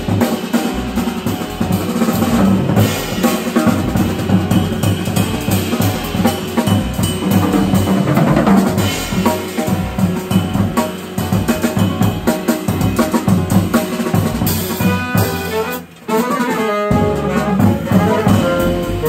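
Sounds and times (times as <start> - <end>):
jazz drum kit playing: 0.0 - 19.0.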